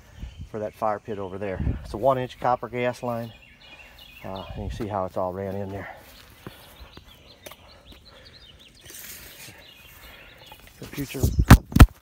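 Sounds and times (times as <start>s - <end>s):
small birds chirping: 0.0s - 11.6s.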